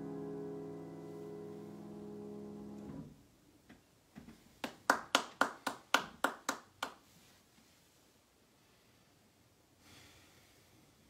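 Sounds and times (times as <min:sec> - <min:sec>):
grand piano chord: 0:00.0 - 0:03.1.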